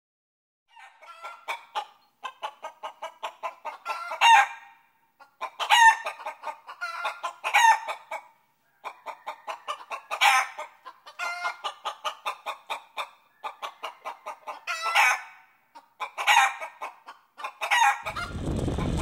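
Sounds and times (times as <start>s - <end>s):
chicken clucking and squawking: 0.7s - 19.0s.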